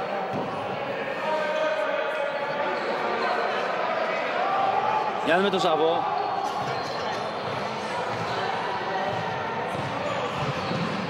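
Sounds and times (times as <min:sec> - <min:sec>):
crowd noise in hall: 0:00.0 - 0:11.0.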